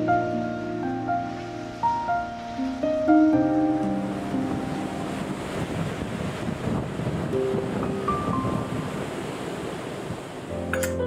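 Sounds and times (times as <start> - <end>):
sea waves washing: 0.0 - 11.0.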